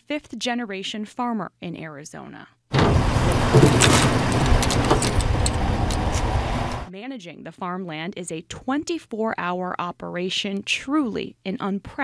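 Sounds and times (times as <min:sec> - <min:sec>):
pickup truck engine rumbling: 0:02.7 - 0:06.9.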